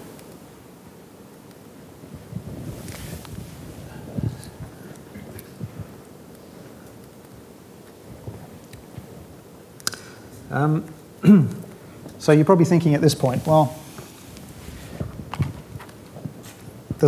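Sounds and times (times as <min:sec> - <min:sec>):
microphone rustles: 0:02.1 - 0:06.1, 0:13.1 - 0:17.0.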